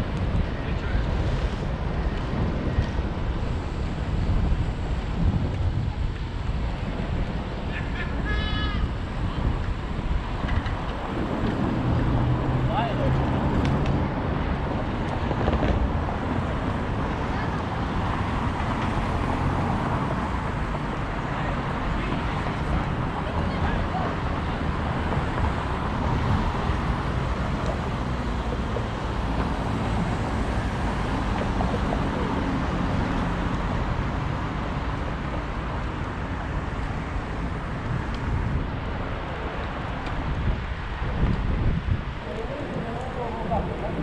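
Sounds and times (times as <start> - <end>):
car traffic passing: 0.0 - 44.0
wind on microphone: 0.0 - 44.0.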